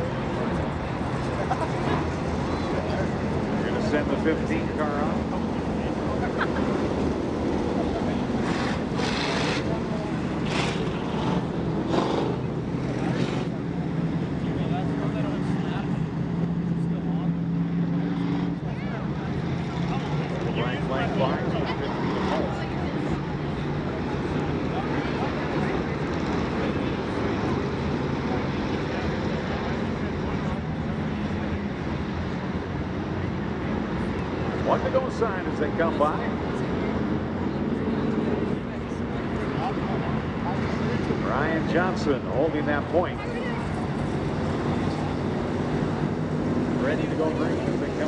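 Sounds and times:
race car engines rumbling: 0:00.0 - 0:48.0.

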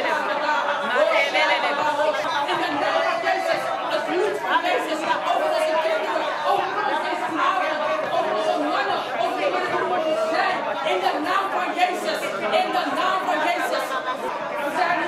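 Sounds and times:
many voices praying aloud: 0:00.0 - 0:15.0.

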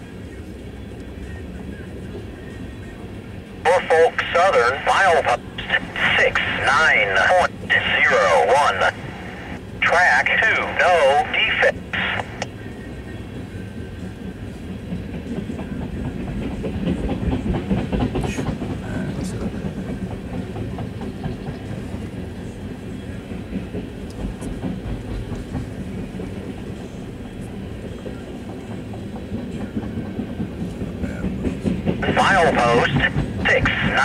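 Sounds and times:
train wheels clicking over rail joints: 0:14.0 - 0:26.8, 0:27.6 - 0:32.1.

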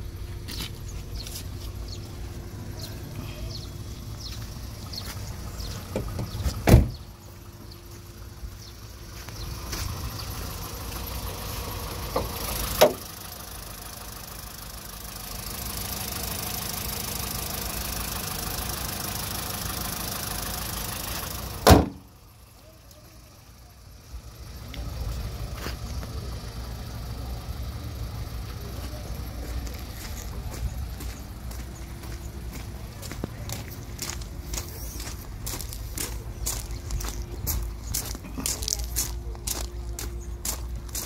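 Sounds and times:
car engine idling: 0:00.0 - 0:41.0
car bonnet slamming shut: 0:05.9 - 0:07.0, 0:21.6 - 0:22.1.

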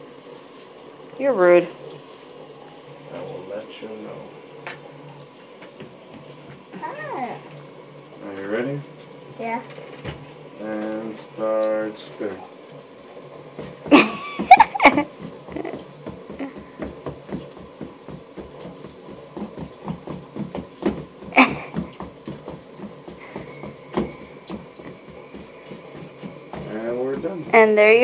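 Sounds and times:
footsteps pattering on tile: 0:13.4 - 0:28.0.

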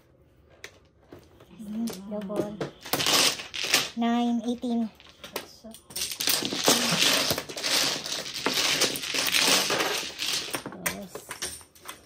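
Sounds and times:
mahjong tiles clattering: 0:01.5 - 0:12.0.

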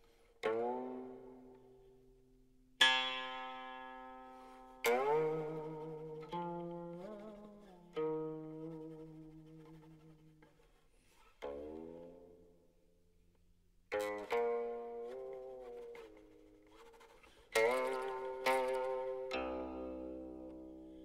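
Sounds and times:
plucked string instrument notes: 0:00.0 - 0:21.0.

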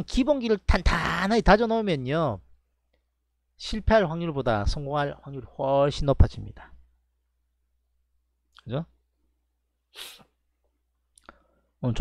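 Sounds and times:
man exhaling sharply: 0:10.0 - 0:10.3.

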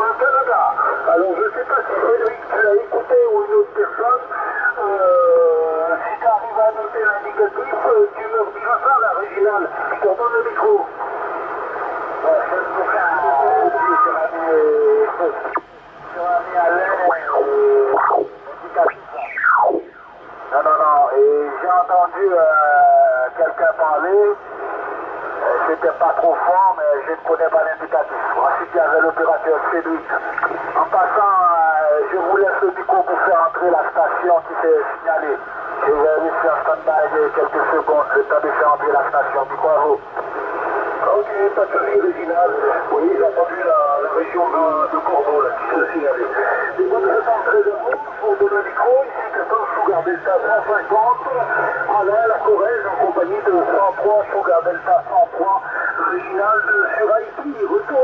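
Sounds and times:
radio band noise: 0:00.0 - 0:58.0
voices over radio speaker: 0:00.0 - 0:58.0.

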